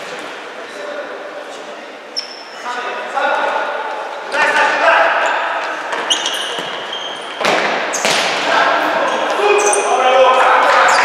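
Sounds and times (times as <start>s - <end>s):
sneaker squeaks on wooden floor: 2.1s - 2.6s, 5.2s - 8.4s
players shouting: 8.4s - 11.0s.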